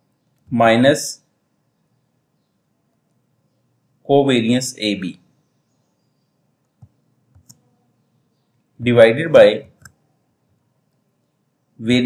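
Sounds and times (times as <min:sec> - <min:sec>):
man speaking: 0:00.5 - 0:01.2, 0:04.1 - 0:05.2, 0:08.8 - 0:09.8, 0:11.8 - 0:12.0.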